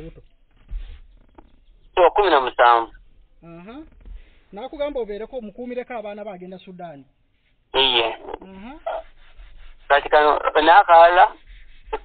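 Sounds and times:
person talking: 0:02.0 - 0:02.9, 0:07.8 - 0:09.0, 0:09.9 - 0:11.4.

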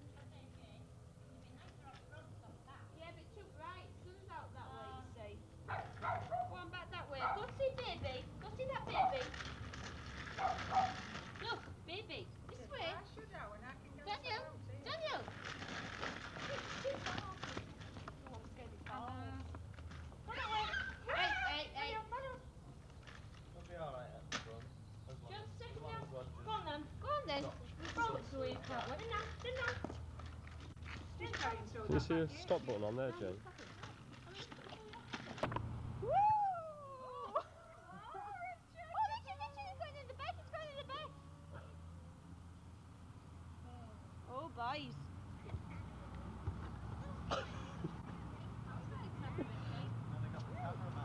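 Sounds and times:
rustling rattling noise: 0:08.6 - 0:11.8, 0:15.0 - 0:18.8
low tape hum: 0:33.4 - 0:51.0
high wavering cries: 0:36.0 - 0:39.7.

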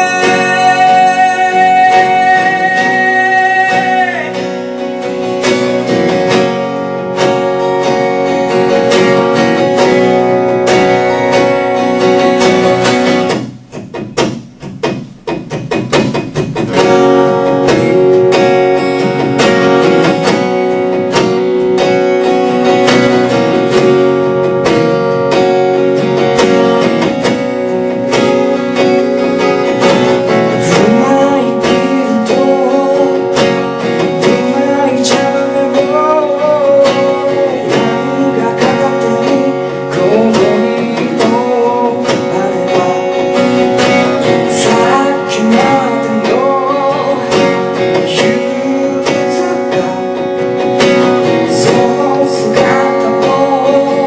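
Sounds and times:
acoustic guitar: 0:00.0 - 0:54.0.

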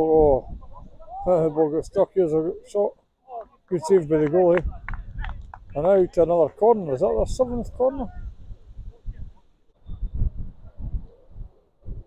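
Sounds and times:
wind buffeting microphone: 0:04.2 - 0:12.0.

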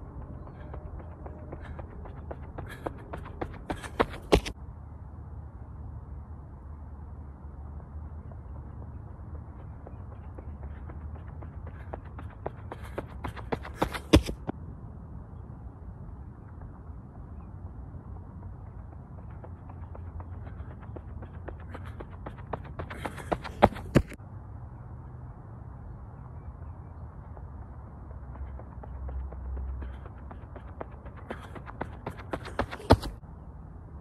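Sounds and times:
running footsteps on dirt path: 0:00.0 - 0:04.6, 0:08.8 - 0:14.5, 0:18.1 - 0:24.2, 0:26.9 - 0:33.2.

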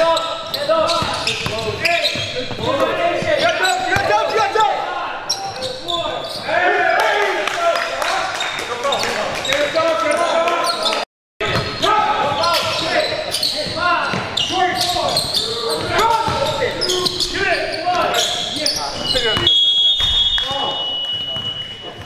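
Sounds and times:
sneakers squeaking: 0:00.0 - 0:06.7, 0:08.3 - 0:22.0
players calling out: 0:00.0 - 0:22.0.

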